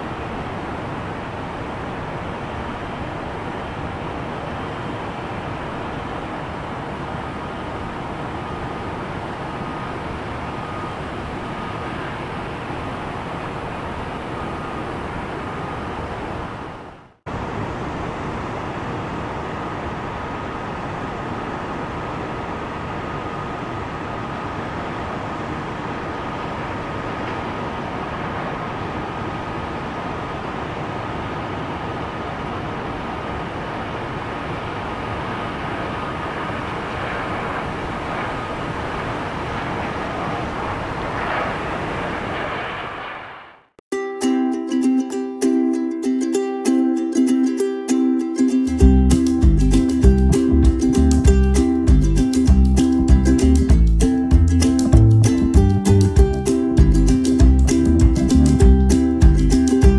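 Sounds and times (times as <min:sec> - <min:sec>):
jet engine rush: 0:00.0 - 0:43.8.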